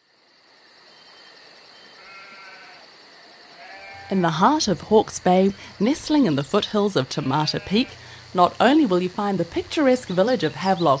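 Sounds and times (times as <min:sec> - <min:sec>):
insects trilling: 0:00.0 - 0:11.0
sheep bleat: 0:02.0 - 0:02.9, 0:03.6 - 0:04.5, 0:07.0 - 0:08.1.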